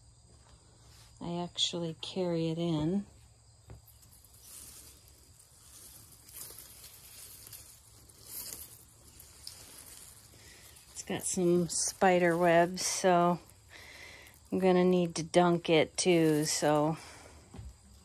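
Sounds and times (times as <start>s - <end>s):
insects droning: 0.0s - 18.0s
soft rustling: 2.9s - 18.0s.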